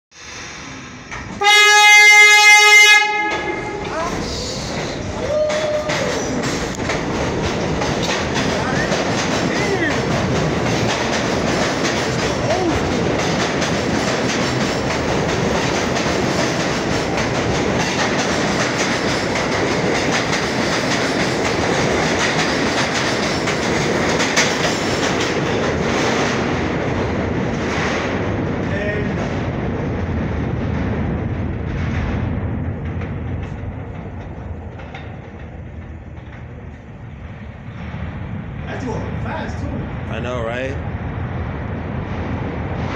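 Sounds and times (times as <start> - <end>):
subway train running with wheel clatter: 0.1 - 42.9.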